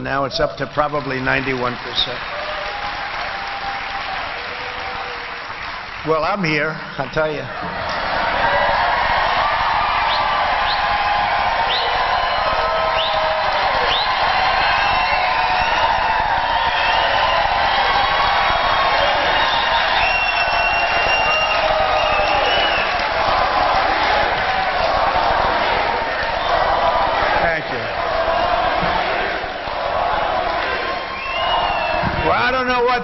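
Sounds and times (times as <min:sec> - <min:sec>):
crowd cheering and applauding: 0:00.0 - 0:33.0
whistles: 0:11.6 - 0:13.2, 0:13.8 - 0:23.1, 0:31.0 - 0:32.4.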